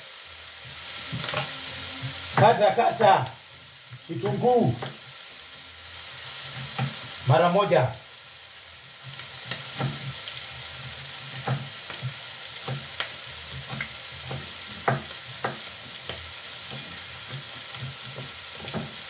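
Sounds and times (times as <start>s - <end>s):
meat sizzling in a frying pan: 0.0s - 19.0s
knife chopping on wooden board: 11.3s - 19.0s.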